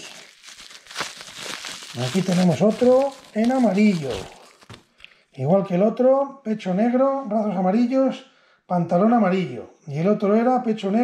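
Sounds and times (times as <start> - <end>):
bubble wrap crinkling: 0.0 - 5.1.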